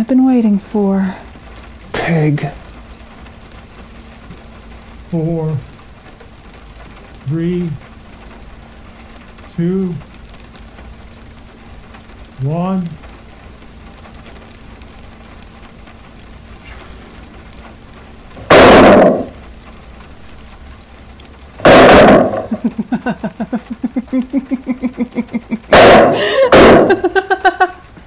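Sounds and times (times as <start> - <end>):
loud crashing bangs: 18.4 - 19.4, 21.6 - 22.6, 25.7 - 27.1
person laughing in pulses: 22.2 - 28.0.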